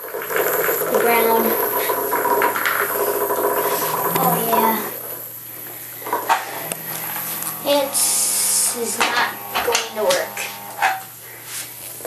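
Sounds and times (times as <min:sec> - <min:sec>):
vibrating toy bugs buzzing on tile: 0:00.0 - 0:11.2.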